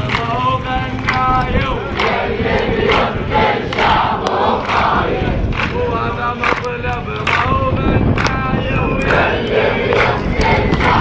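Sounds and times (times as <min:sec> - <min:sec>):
crowd chanting and shouting: 0:00.0 - 0:11.0.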